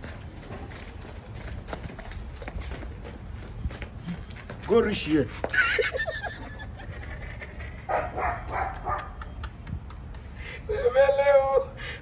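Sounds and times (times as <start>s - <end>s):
man laughing hard: 5.6s - 7.9s.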